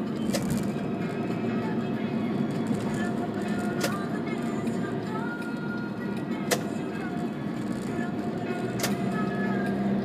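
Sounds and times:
car road and engine noise: 0.0s - 10.0s
music playing on radio: 0.0s - 10.0s.

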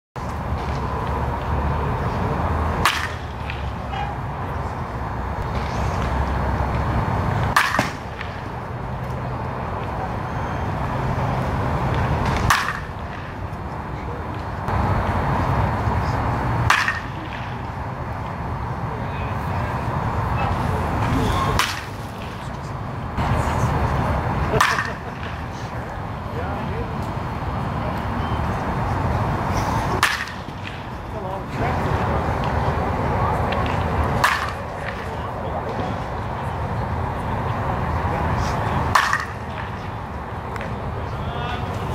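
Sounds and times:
baseball bat cracking balls: 2.7s - 4.1s, 5.4s - 8.6s, 11.8s - 13.6s, 16.6s - 17.6s, 21.4s - 22.6s, 24.5s - 25.6s, 29.9s - 31.0s, 33.5s - 36.1s, 38.9s - 39.9s.

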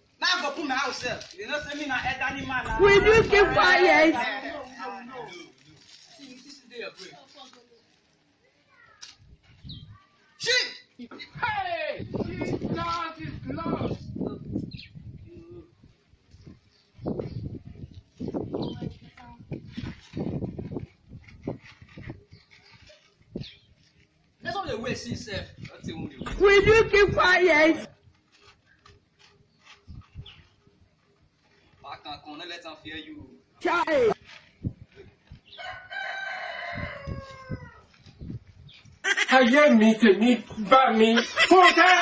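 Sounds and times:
people talking indistinctly: 0.5s - 5.6s, 24.4s - 27.9s
rooster crowing: 35.6s - 37.8s.

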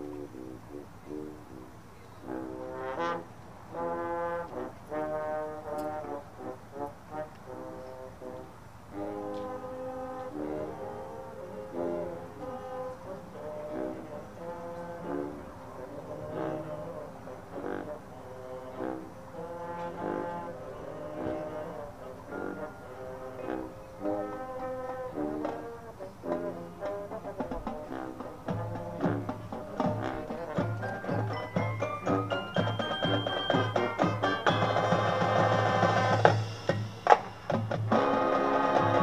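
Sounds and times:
marching band brass playing: 0.0s - 39.0s.

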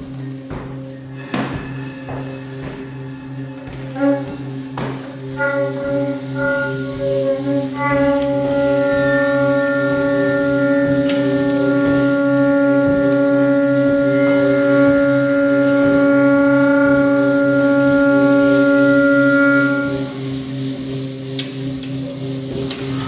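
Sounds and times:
pulsing electronic drone: 0.0s - 23.0s
saxophone long note: 1.3s - 20.9s.

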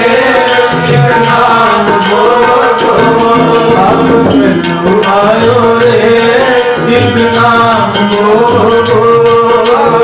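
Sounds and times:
harmonium melody: 0.0s - 10.0s
tabla strokes: 0.0s - 10.0s
voices singing: 0.0s - 10.0s.

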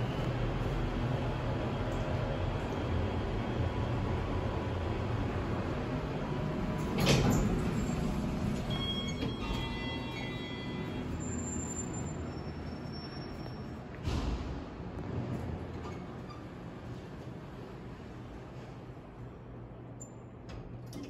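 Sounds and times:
low machinery hum: 0.0s - 21.0s
elevator doors sliding open: 5.0s - 19.0s.

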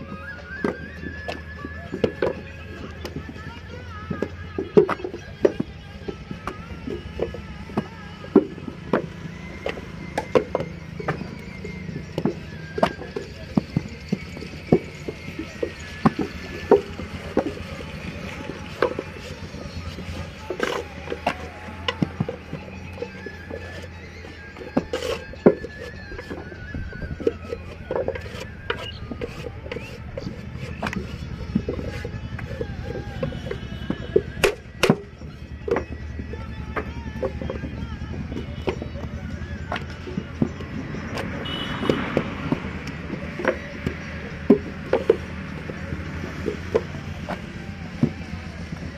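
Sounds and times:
low engine-like rumble: 0.0s - 48.9s.

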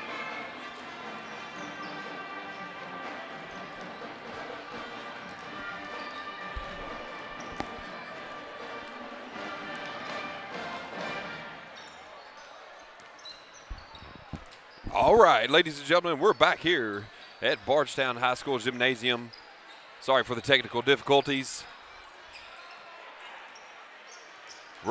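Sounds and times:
background music: 0.0s - 11.6s
crowd chatter: 0.0s - 24.9s
basketballs bouncing on hardwood floor: 6.6s - 8.0s, 13.7s - 14.5s.

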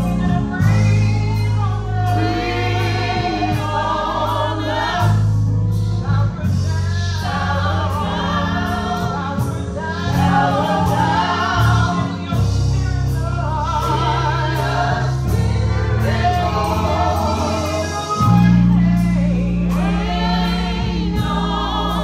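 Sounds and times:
sustained low bass notes: 0.0s - 22.0s
backing singers: 6.0s - 22.0s.

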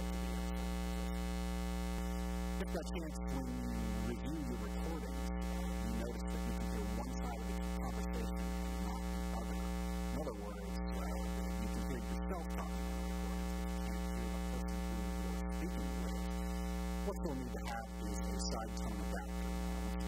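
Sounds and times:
electrical mains hum: 0.0s - 20.0s.

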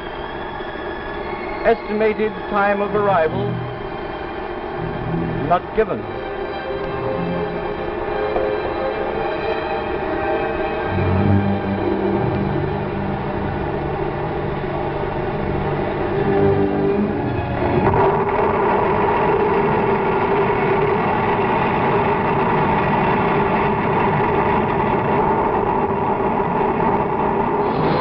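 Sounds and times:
engine-like roaring: 0.0s - 28.0s
low droning tones: 0.0s - 28.0s.

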